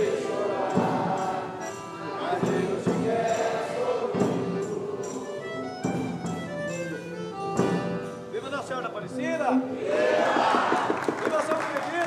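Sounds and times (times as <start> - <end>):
men singing: 0.0 - 5.5
percussion beat: 0.0 - 9.2, 9.9 - 12.0
accordion melody: 0.0 - 9.8.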